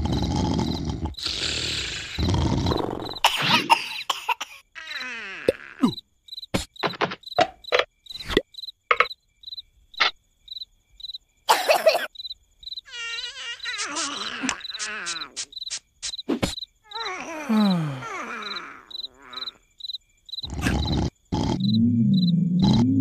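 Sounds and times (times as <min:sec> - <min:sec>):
cricket chirping: 0:00.0 - 0:23.0
cartoon character vocal noises: 0:04.8 - 0:06.0, 0:12.9 - 0:15.5, 0:16.9 - 0:19.6, 0:20.4 - 0:23.0.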